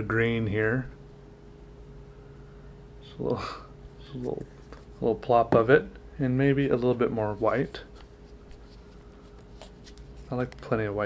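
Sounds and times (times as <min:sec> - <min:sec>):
paint tube handling noise: 0:07.4 - 0:10.9.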